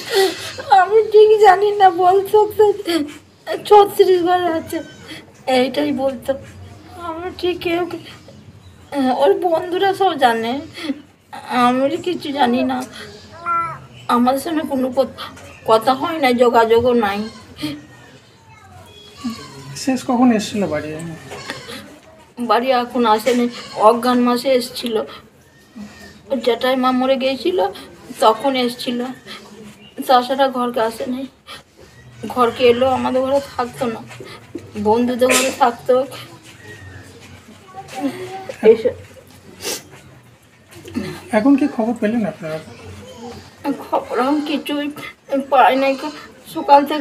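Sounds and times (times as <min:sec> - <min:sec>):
faint background voices: 0:00.0 - 0:47.0
woman sniffing: 0:39.6 - 0:40.0
woman speaking: 0:43.6 - 0:47.0.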